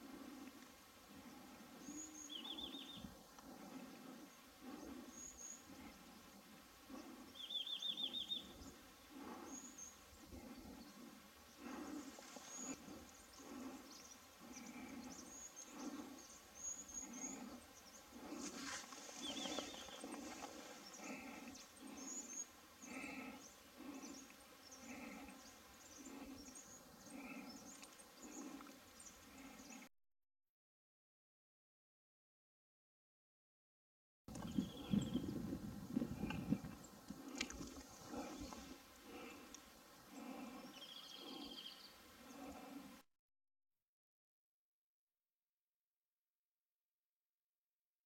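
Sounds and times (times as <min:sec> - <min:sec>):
small birds chirping: 0:00.0 - 0:29.9, 0:34.3 - 0:43.0.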